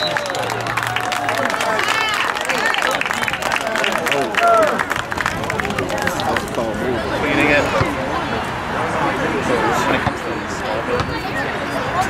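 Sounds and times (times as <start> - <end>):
voices shouting and chattering: 0.0 - 12.0.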